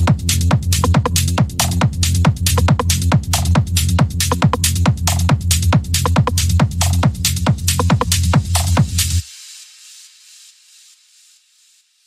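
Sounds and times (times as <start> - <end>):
trance kick drum and bass: 0.0 - 11.8
high hiss: 9.0 - 12.0.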